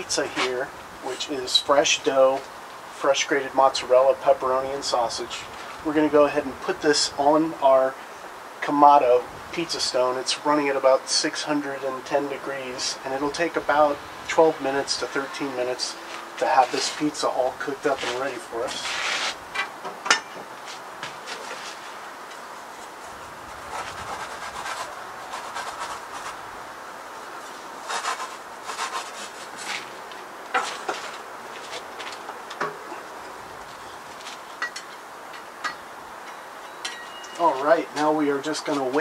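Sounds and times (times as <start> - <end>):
pizza peel scraping on stone: 23.6 - 26.4, 27.8 - 29.9.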